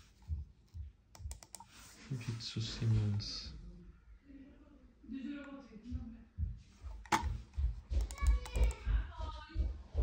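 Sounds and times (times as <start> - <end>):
mouse buttons clicking: 1.2 - 1.7.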